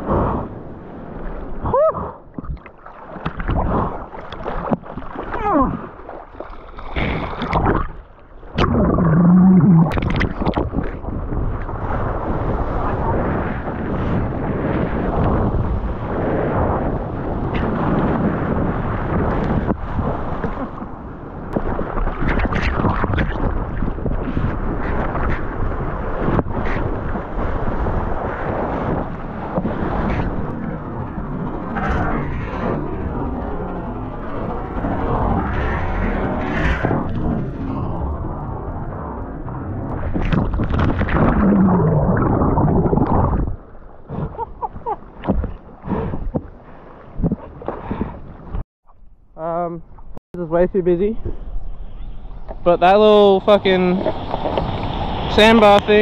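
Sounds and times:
seawater rushing and churning: 0:00.0 - 0:48.6, 0:50.5 - 0:56.0
short splashes and knocks: 0:02.4 - 0:09.0.

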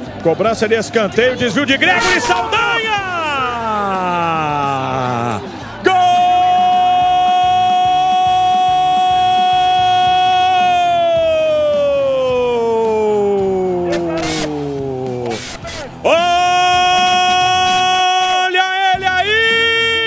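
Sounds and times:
commentator's long goal cry: 0:01.8 - 0:15.3.

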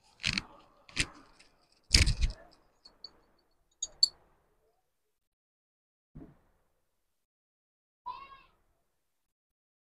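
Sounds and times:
cat meowing: 0:08.1 - 0:08.6.

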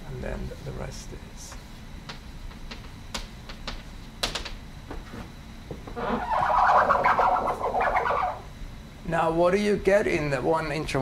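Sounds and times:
chalk scratching on blackboard: 0:06.1 - 0:08.4.

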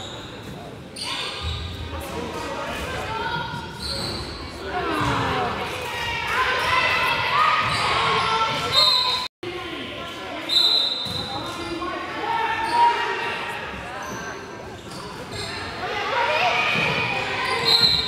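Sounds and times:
sneakers squeaking on court: 0:03.6 - 0:05.1, 0:14.0 - 0:15.8.

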